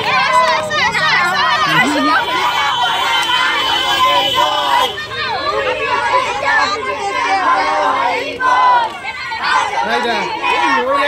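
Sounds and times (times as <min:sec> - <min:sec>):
children shouting and chattering: 0:00.0 - 0:11.0.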